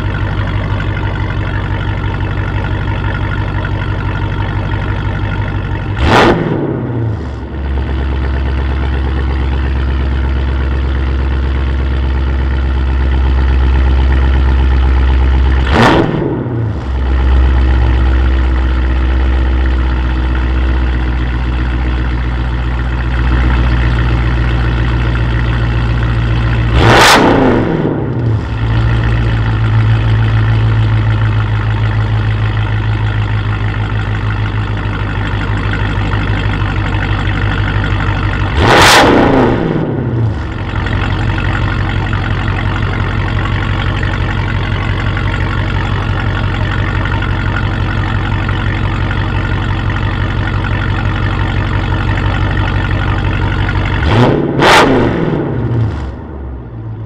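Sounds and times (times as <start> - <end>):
car engine idling: 0.0 - 57.0
engine revving: 5.8 - 10.7, 13.2 - 18.6, 23.2 - 31.9, 35.0 - 47.8, 51.2 - 56.5.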